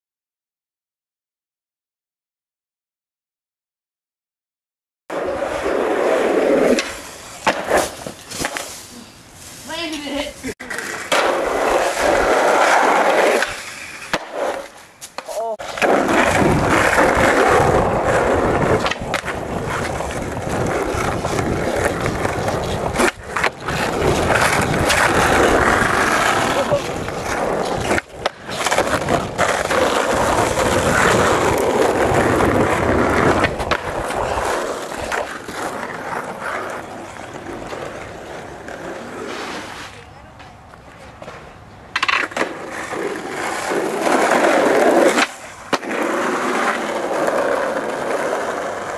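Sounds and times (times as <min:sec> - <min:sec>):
skateboard wheels rolling on asphalt: 0:05.1 - 0:48.9.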